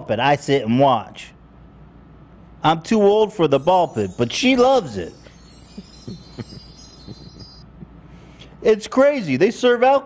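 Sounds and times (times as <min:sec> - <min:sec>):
low steady hum: 0:03.4 - 0:08.6
faint chime-like tinkling: 0:03.6 - 0:07.8.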